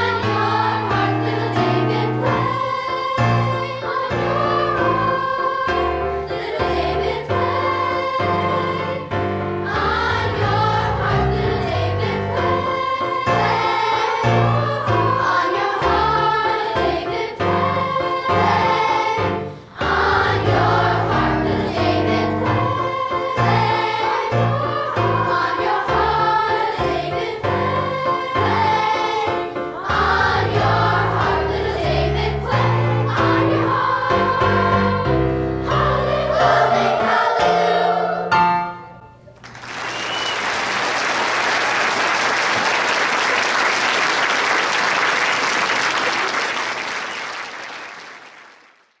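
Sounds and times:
children's choir singing: 0.0 - 39.0
audience applauding: 39.4 - 49.0.

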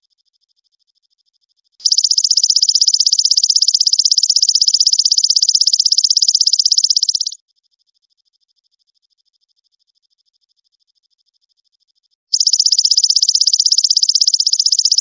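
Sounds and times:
faint insect trill: 0.0 - 15.0
insect trilling: 1.8 - 7.4, 12.3 - 15.0.

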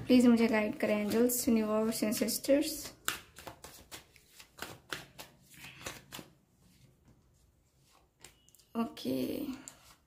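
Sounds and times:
cards being shuffled by hand: 0.8 - 6.9.

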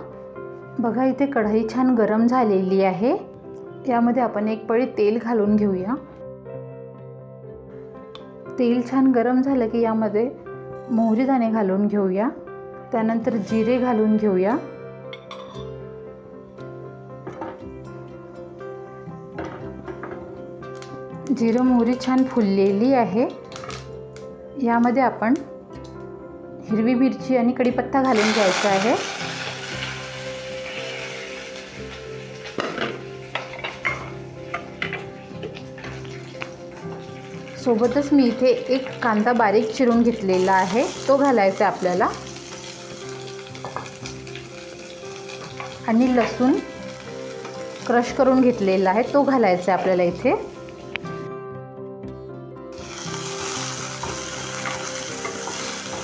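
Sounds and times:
leaves sizzling in hot oil: 28.0 - 50.9, 52.8 - 56.0.

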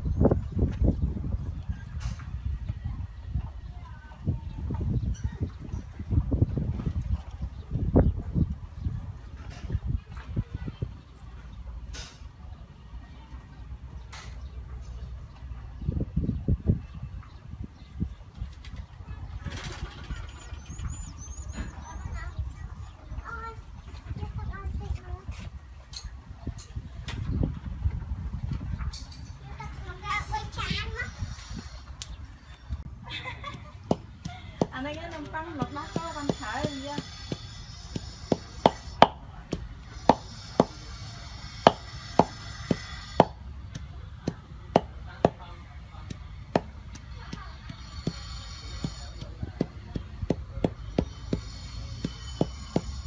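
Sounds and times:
pestle pounding in a mortar: 33.8 - 40.8, 41.6 - 45.4, 46.1 - 53.0
knife chopping on wooden board: 41.7 - 43.4.

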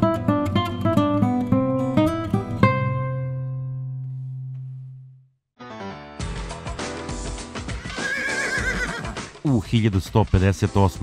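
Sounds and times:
horse whinny: 7.7 - 9.3.

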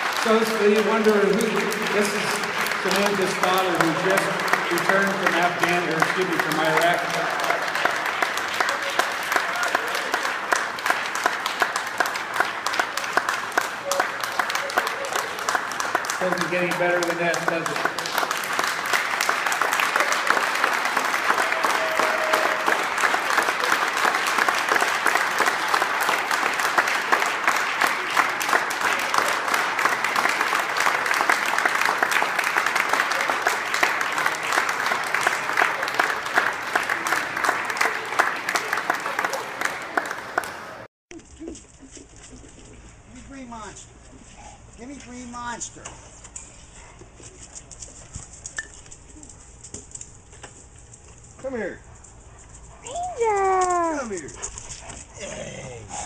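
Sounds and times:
crowd applauding: 0.0 - 40.9.

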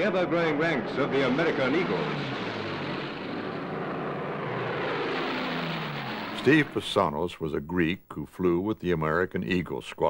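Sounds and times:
propeller plane engines droning: 0.0 - 7.2.

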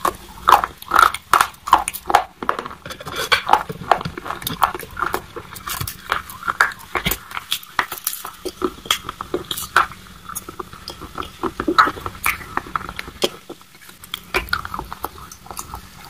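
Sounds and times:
chalk crunching while chewed: 0.0 - 16.0.

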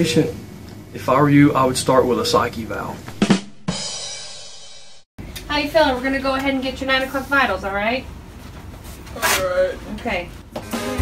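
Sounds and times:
drum hit: 3.1 - 5.0
cymbal crash: 3.2 - 5.0.

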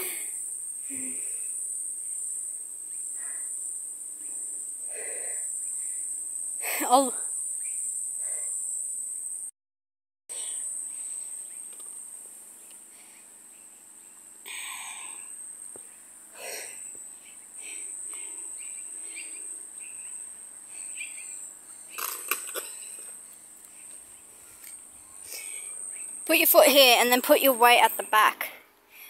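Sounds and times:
insects droning: 0.0 - 9.5, 10.3 - 29.0.

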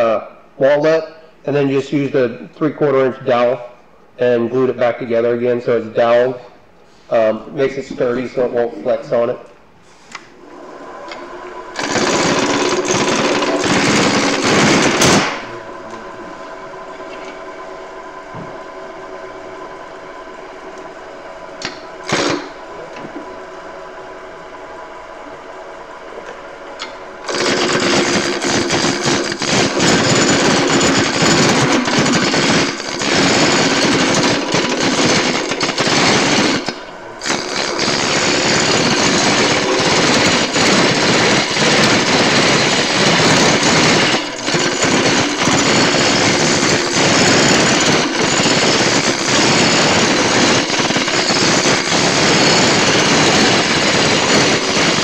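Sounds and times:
wood lathe motor hum: 10.4 - 18.8, 21.6 - 23.2, 26.2 - 55.0
turning tool cutting wood: 11.1 - 15.5, 21.6 - 22.6, 26.8 - 55.0.

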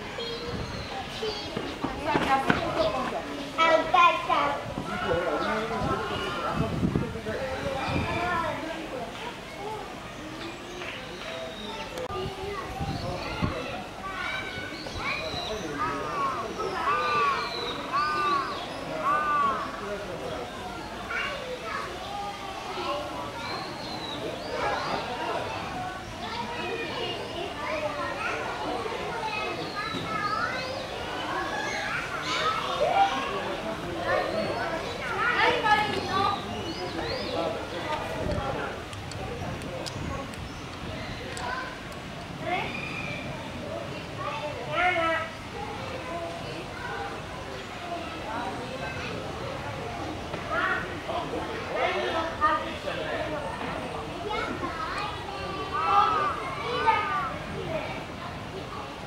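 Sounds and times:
shrill children's calls: 0.0 - 2.3, 9.4 - 19.9, 20.6 - 38.2, 40.5 - 53.0, 53.6 - 59.0
children chattering: 0.0 - 59.0.

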